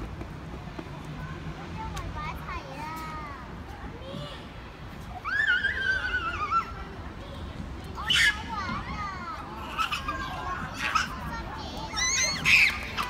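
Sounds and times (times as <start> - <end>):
children's voices at play: 1.0 - 13.0
child's loud cry: 5.2 - 6.8
child's high-pitched call: 8.0 - 13.0.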